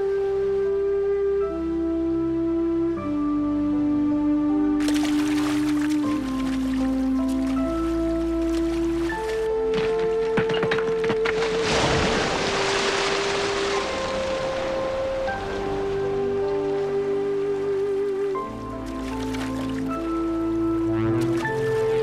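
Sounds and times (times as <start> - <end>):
slow orchestral score: 0.0 - 10.2, 11.4 - 22.0.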